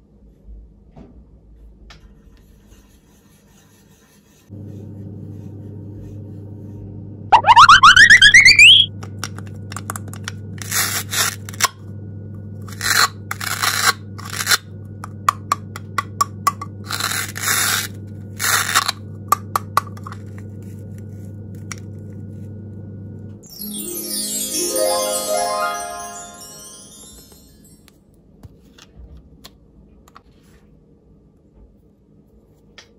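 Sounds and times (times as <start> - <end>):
rising whistle sound effect: 7.3 - 8.9.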